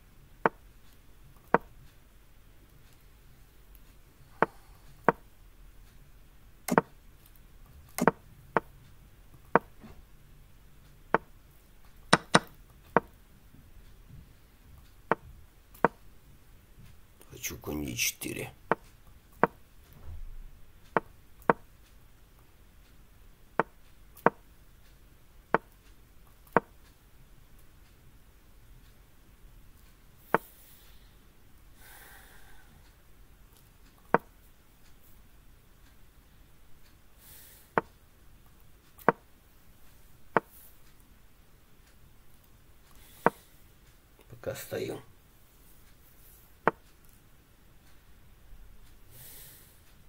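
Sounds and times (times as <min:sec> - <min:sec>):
wooden knocks of chess pieces: 0:00.4 - 0:00.6, 0:01.4 - 0:01.7, 0:04.4 - 0:05.3, 0:06.7 - 0:06.9, 0:08.0 - 0:08.7, 0:09.5 - 0:10.0, 0:11.1 - 0:11.3, 0:12.1 - 0:13.2, 0:15.1 - 0:16.0, 0:18.7 - 0:20.2, 0:20.9 - 0:21.7, 0:23.6 - 0:24.4, 0:25.5 - 0:25.8, 0:26.5 - 0:26.8, 0:34.1 - 0:34.3, 0:37.8 - 0:38.0, 0:39.0 - 0:39.3, 0:40.3 - 0:40.6, 0:43.2 - 0:43.5, 0:46.6 - 0:46.8
faint breath through the nose: 0:04.1 - 0:05.0, 0:30.2 - 0:33.0, 0:37.2 - 0:37.8, 0:42.9 - 0:43.7, 0:49.1 - 0:50.0.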